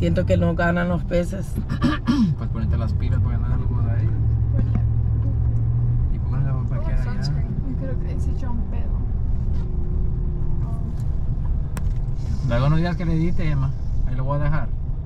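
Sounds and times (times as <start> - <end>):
car engine and road rumble: 0.0 - 15.0.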